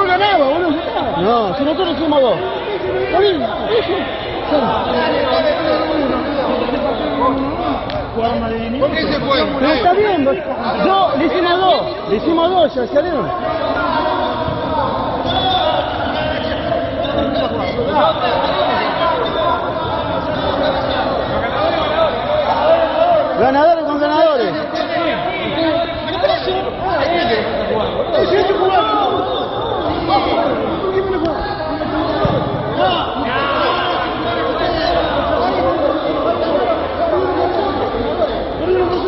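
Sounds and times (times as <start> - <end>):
men's voices chattering: 0.0 - 39.0.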